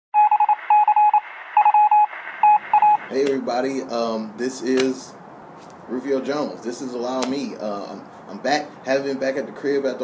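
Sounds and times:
morse code beeps: 0.2 - 3.1.

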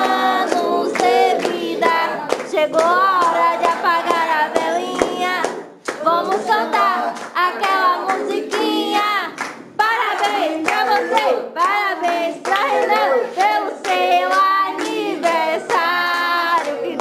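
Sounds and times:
group singing a birthday song: 0.0 - 17.0
people clapping in rhythm: 0.0 - 17.0.

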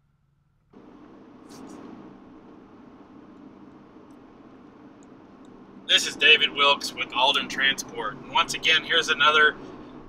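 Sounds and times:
road and wind noise: 0.8 - 10.0.

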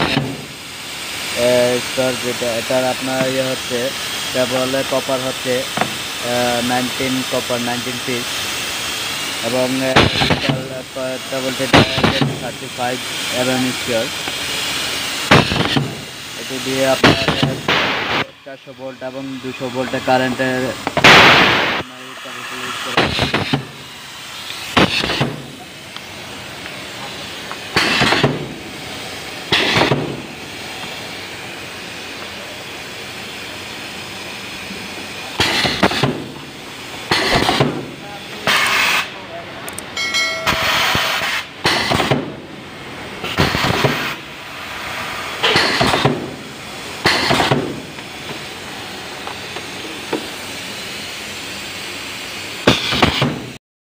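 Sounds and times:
short bursts of air hiss: 0.0 - 39.3, 40.4 - 53.6
workshop background noise: 0.0 - 53.6.

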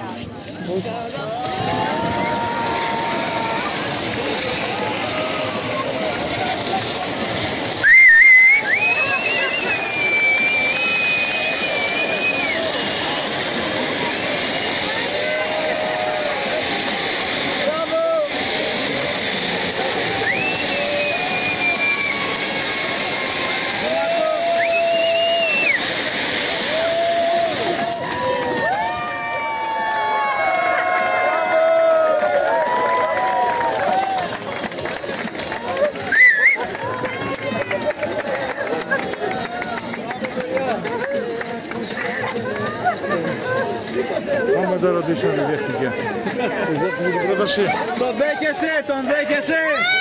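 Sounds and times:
firework hissing: 0.4 - 50.0.

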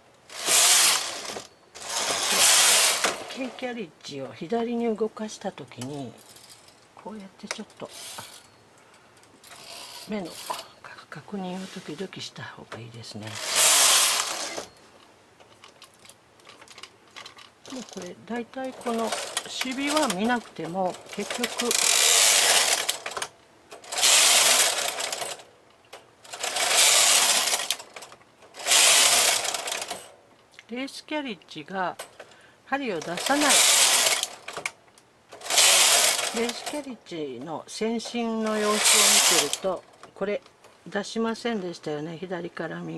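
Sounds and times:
knitting machine carriage scraping: 0.3 - 3.7, 9.4 - 10.7, 13.2 - 14.8, 16.4 - 25.5, 26.3 - 30.1, 32.9 - 34.7, 35.3 - 37.0, 37.9 - 39.9.

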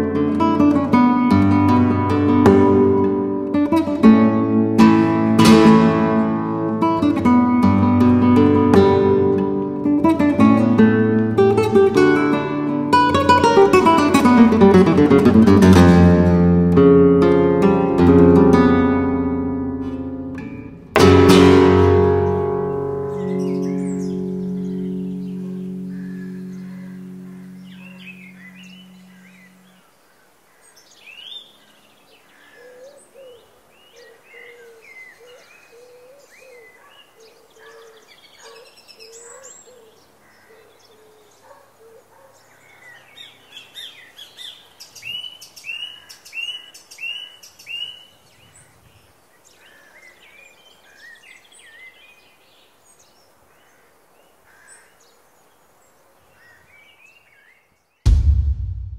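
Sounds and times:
held guitar chord: 0.0 - 29.7
low repeated bird call: 21.8 - 41.3
birds singing and chirping: 23.0 - 29.9, 30.6 - 53.8.

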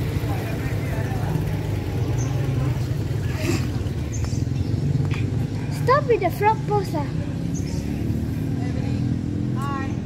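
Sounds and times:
small engine droning: 0.0 - 10.0.

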